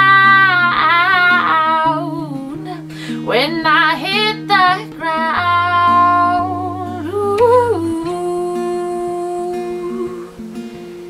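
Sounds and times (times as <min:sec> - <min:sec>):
woman singing wordless notes: 0:00.0 - 0:10.8
acoustic guitar accompaniment: 0:00.0 - 0:11.0.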